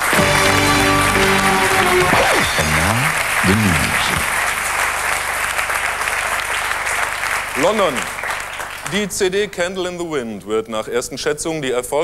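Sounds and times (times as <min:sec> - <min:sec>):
falling pitch slides: 0:00.0 - 0:03.3
music jingle: 0:00.0 - 0:04.2
studio audience applauding: 0:00.0 - 0:09.4.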